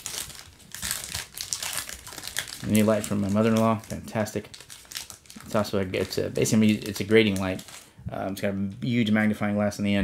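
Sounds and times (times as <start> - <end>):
wrapper crinkling: 0.0 - 7.9.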